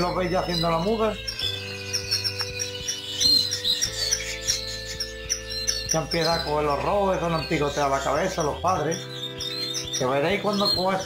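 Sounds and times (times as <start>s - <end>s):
canaries chirping: 0.0s - 11.0s.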